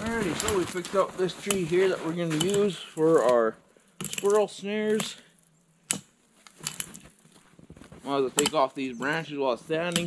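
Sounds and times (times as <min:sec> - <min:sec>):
soft handling knocks and rustles: 0:00.0 - 0:03.4, 0:06.3 - 0:08.8.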